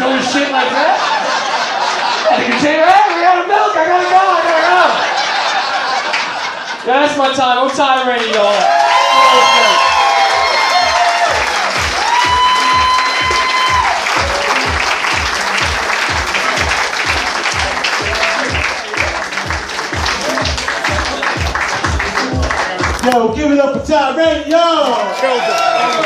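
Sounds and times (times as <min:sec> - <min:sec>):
audience applauding: 0:03.9 - 0:06.8, 0:07.6 - 0:23.2, 0:24.8 - 0:26.0
music with kick-drum beat: 0:09.8 - 0:24.5.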